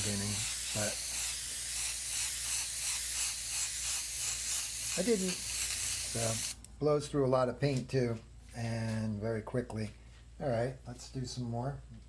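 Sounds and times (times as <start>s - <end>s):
airbrush hissing: 0.0s - 6.6s.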